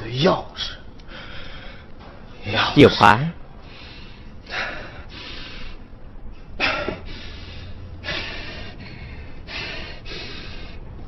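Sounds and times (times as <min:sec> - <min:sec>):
low steady hum: 0:00.0 - 0:11.0
person breathing heavily: 0:00.6 - 0:02.0, 0:03.5 - 0:11.0.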